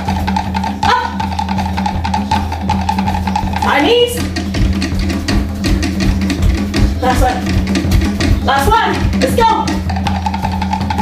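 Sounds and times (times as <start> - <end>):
constant bass: 0.0 - 11.0
fast drum music: 0.0 - 11.0.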